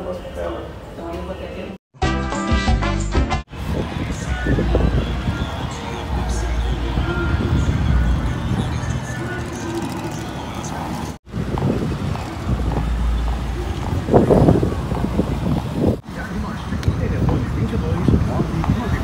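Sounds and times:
traffic running past: 0:03.5 - 0:19.0
voices in background: 0:13.4 - 0:19.0.

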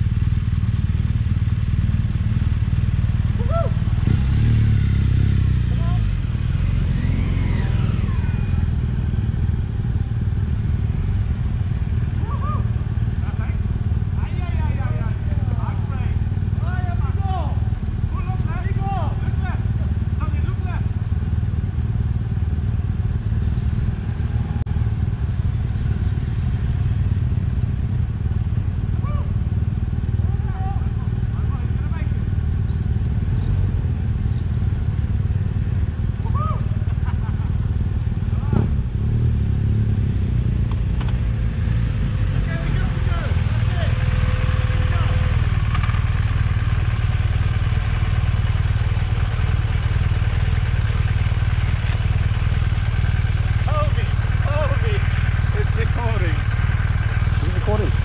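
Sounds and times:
motorcycle engines rumbling: 0:00.0 - 0:58.0.

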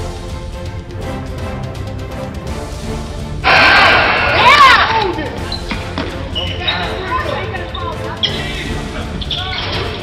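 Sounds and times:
voices in gym: 0:03.5 - 0:10.0.

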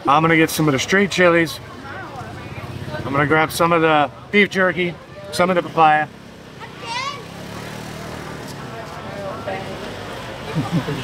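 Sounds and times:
faint voices of people: 0:00.0 - 0:11.0
motorbike traffic hum: 0:00.0 - 0:11.0.

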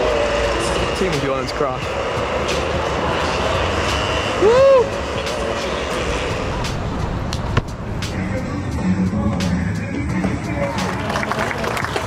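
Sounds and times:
kart engine passing: 0:00.0 - 0:12.0
rising and falling tone: 0:01.8 - 0:10.0.

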